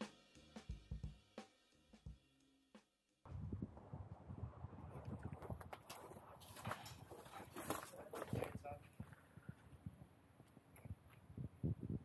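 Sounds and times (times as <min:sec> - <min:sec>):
faint footsteps: 0:04.9 - 0:11.5.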